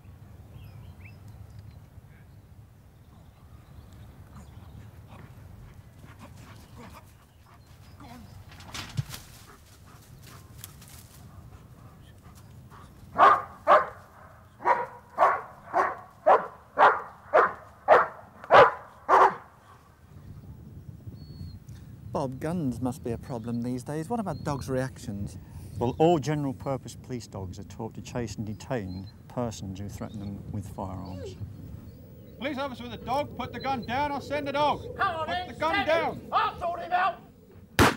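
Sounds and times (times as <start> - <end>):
dog barking: 13.2 - 19.5.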